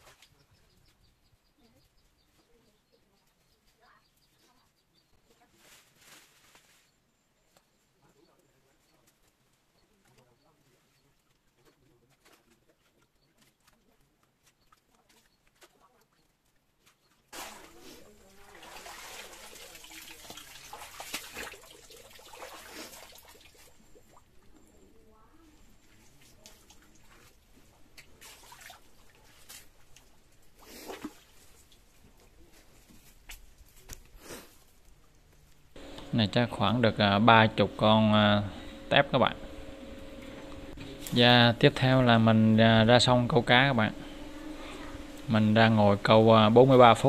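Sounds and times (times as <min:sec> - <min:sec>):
water splashing and trickling: 0:17.1 - 0:24.8, 0:25.6 - 0:32.3.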